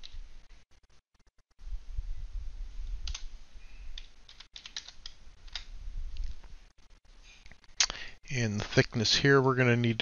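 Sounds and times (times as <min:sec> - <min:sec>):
keyboard keys clicking: 0:04.0 - 0:05.7.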